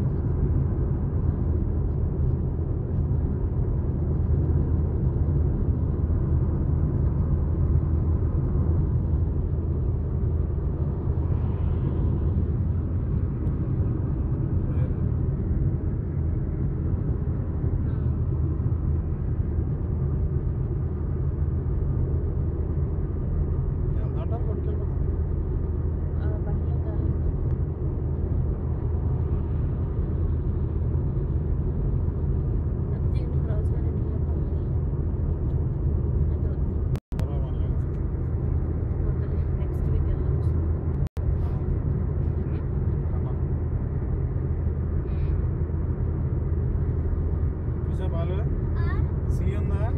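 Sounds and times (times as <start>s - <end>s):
car cabin road and engine rumble: 0.0s - 49.9s.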